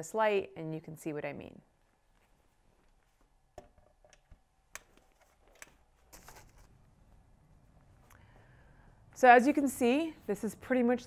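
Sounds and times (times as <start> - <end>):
soft rustling: 1.8 - 3.4.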